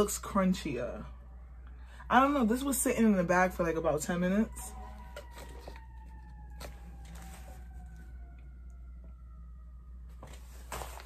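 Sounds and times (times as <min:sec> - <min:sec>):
emergency vehicle siren wailing: 0:00.0 - 0:11.0
faint paper crinkles: 0:04.8 - 0:08.1.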